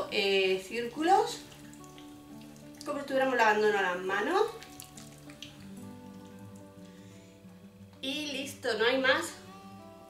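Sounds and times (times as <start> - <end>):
quiet background music: 0.0 - 10.0
wet hands rubbing together: 4.5 - 6.4.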